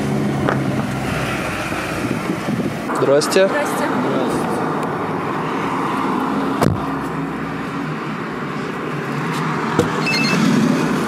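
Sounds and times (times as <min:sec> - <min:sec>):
rushing wind: 0:00.0 - 0:11.0.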